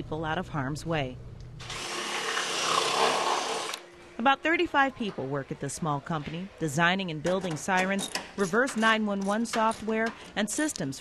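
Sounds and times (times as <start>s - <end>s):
power tool hissing: 1.6s - 3.8s.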